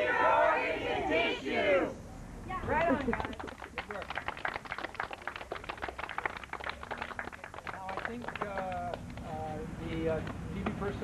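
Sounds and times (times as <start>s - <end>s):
people clapping: 2.8s - 10.9s.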